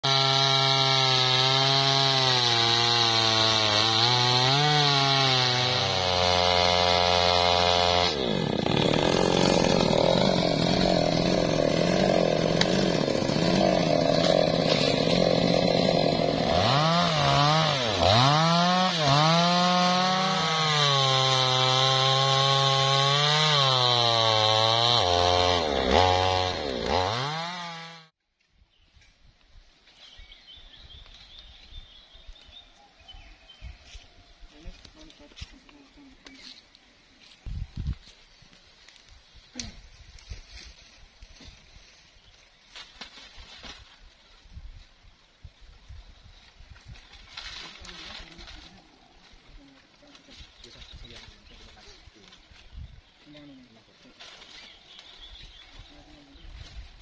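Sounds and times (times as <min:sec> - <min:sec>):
chainsaw cutting wood: 0:00.0 - 0:28.2.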